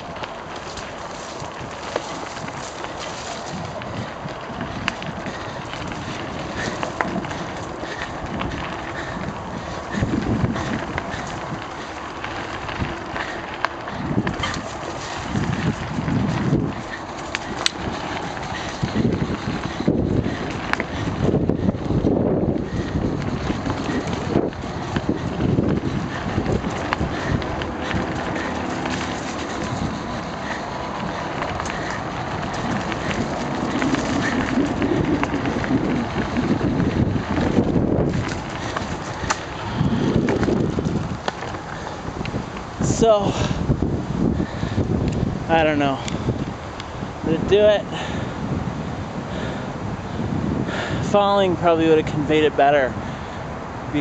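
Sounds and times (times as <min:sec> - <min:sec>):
bike knocks and rattles: 0:00.0 - 0:43.7
low rumbling: 0:00.0 - 0:51.0
wind noise on microphone: 0:00.0 - 0:54.0.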